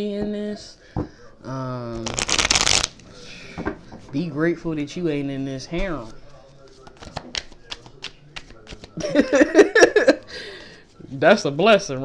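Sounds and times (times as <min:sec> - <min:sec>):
cards being shuffled: 0:01.9 - 0:03.1, 0:06.0 - 0:09.0
cards being handled: 0:01.9 - 0:04.1, 0:05.8 - 0:09.0.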